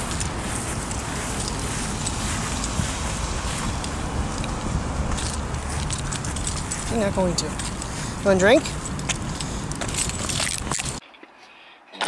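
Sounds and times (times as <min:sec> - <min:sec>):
outdoor noise rush: 0:00.0 - 0:11.0
small metal pieces jingling: 0:05.1 - 0:11.0.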